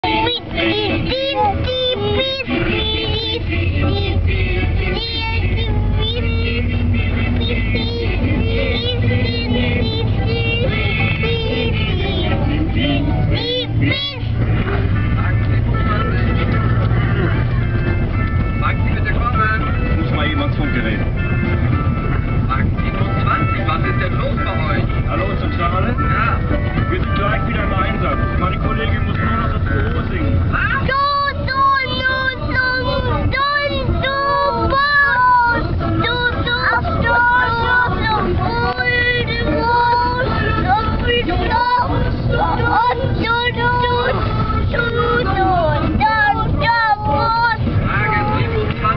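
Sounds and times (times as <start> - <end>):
car road and engine rumble: 0.0 - 48.9
children singing: 30.8 - 47.7.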